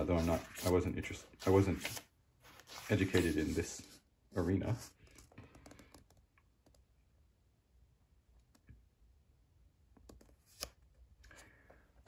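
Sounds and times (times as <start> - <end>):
book pages rustling: 0.0 - 4.0.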